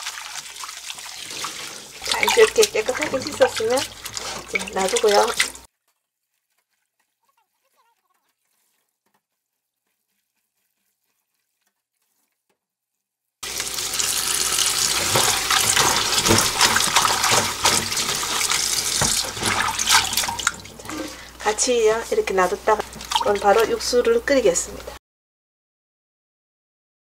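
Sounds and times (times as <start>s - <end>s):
tap water running into bowl: 0.0s - 5.7s, 13.4s - 25.0s
small sharp splashes and clicks: 0.0s - 9.3s, 14.7s - 21.5s, 22.4s - 23.9s
hands washing vegetables in water: 0.0s - 25.0s.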